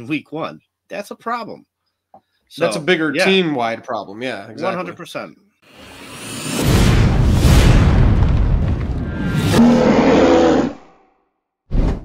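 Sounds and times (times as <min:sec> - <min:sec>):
short rush of noise: 0:05.7 - 0:09.6
deep low hit: 0:06.5 - 0:09.6.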